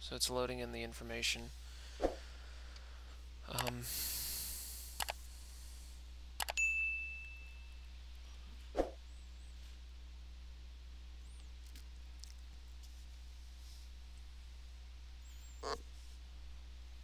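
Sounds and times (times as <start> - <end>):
low hum: 0.0 - 17.0
mouse clicks: 3.5 - 3.8
bell-like ding: 6.6 - 7.8
swish effect: 8.8 - 9.0.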